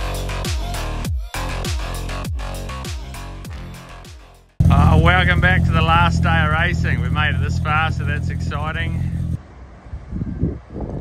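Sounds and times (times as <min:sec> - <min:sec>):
person speaking: 0:04.6 - 0:09.4
car engine droning: 0:04.6 - 0:10.1.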